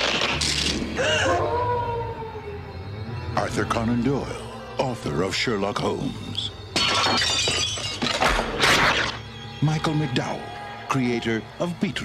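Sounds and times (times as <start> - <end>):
glass breaking crash: 6.8 - 9.2.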